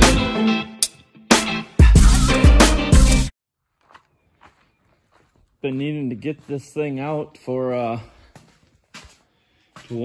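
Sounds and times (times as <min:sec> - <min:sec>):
man speaking: 0:05.6 - 0:08.2.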